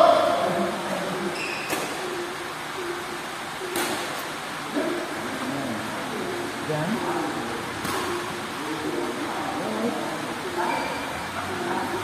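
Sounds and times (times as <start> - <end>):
faint distant voices: 0.0 - 12.0
racket hitting shuttlecock: 1.6 - 2.2, 3.6 - 4.2, 7.8 - 8.3.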